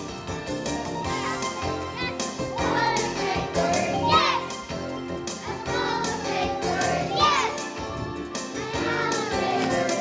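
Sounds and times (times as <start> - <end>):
backing track: 0.0 - 10.0
children's choir singing: 1.1 - 7.7, 8.6 - 10.0.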